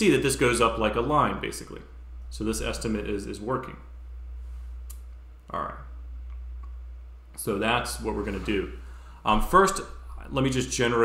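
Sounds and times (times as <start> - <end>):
man talking: 0.0 - 3.9, 5.5 - 5.9, 7.4 - 11.0
low hum: 0.0 - 11.0.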